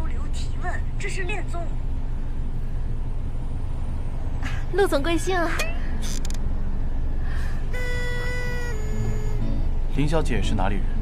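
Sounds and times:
car cabin rumble: 7.3s - 11.0s
sustained music notes: 7.7s - 10.0s.

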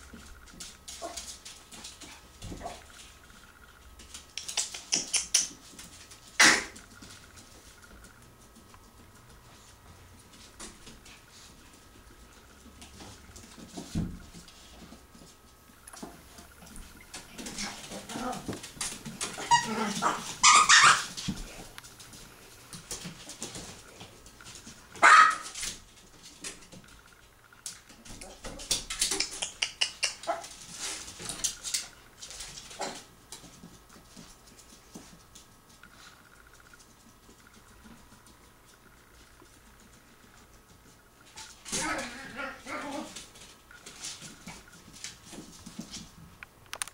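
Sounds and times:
puppy paws clicking on tile: 0.0s - 46.9s
dog whining and yipping: 19.4s - 21.1s.

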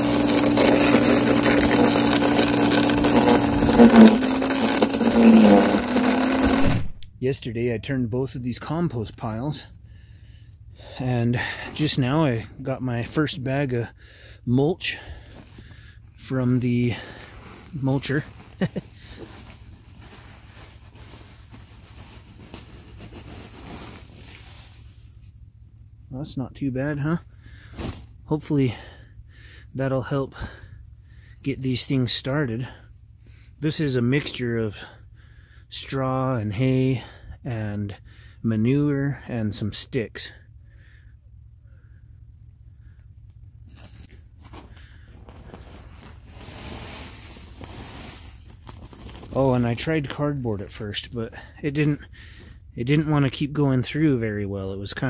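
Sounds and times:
mulch pouring from a sack: 0.0s - 6.9s, 16.9s - 25.0s, 43.8s - 50.2s.

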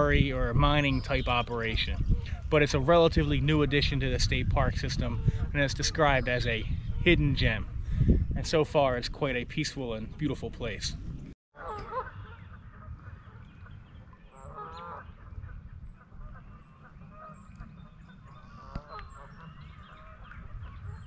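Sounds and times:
geese honking: 11.6s - 21.0s
small birds chirping: 12.2s - 21.0s.

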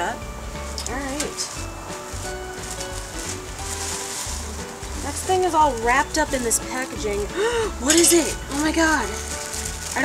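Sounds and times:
soft background music: 0.0s - 10.0s
packaging rustling: 0.6s - 10.0s.

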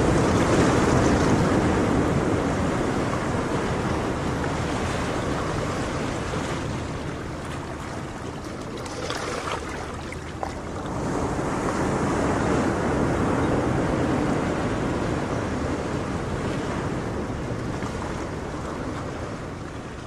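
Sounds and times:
ocean wave rushing and washing back: 0.0s - 20.0s.

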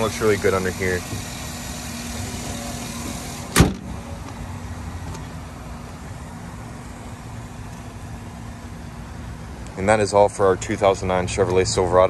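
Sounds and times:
truck engine idling: 0.0s - 12.0s
truck hood slammed shut: 3.5s - 3.9s.

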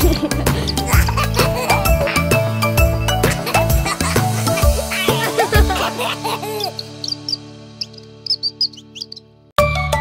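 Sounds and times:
cartoon bird chirps: 6.6s - 9.3s.

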